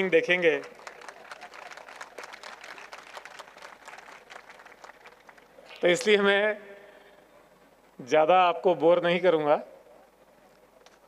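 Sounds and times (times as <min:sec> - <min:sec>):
faint audience applause: 0:00.0 - 0:05.6.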